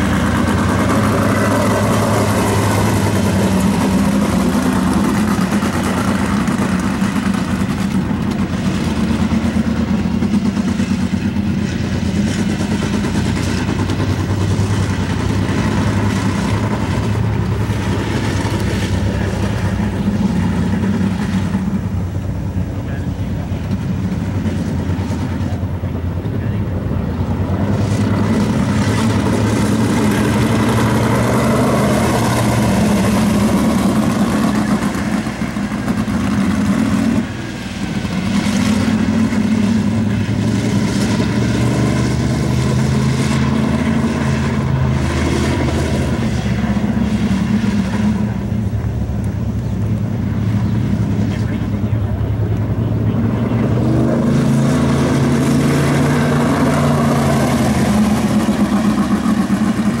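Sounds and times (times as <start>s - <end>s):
race car engine accelerating: 0.0s - 60.0s.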